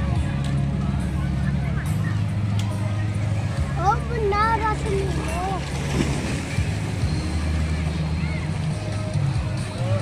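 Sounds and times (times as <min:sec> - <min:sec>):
boat motor humming: 0:00.0 - 0:10.0
water washing: 0:03.8 - 0:09.3.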